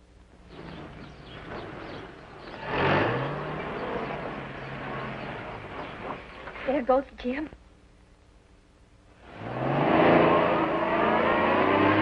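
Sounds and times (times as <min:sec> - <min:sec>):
truck engine pulling away: 0:00.5 - 0:06.6, 0:09.3 - 0:12.0.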